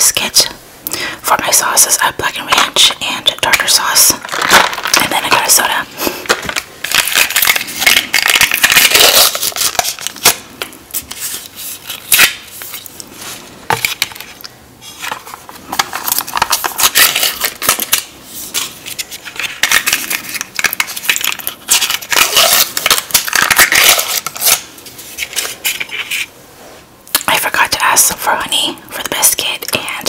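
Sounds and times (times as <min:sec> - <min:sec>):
foil lids crinkling: 0:04.1 - 0:05.5, 0:06.1 - 0:26.3.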